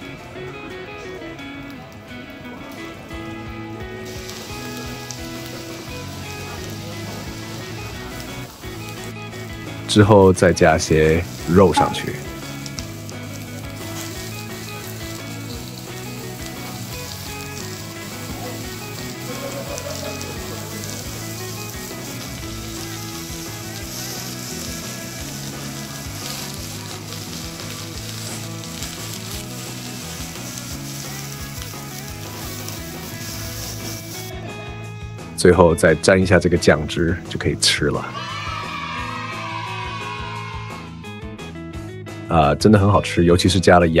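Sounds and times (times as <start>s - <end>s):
background music: 0.0s - 44.0s
meat sizzling on a grill pan: 4.0s - 34.3s.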